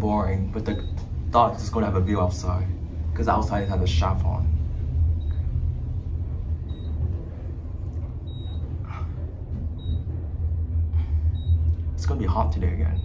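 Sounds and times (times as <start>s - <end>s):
elevator descending rumble: 0.0s - 13.0s.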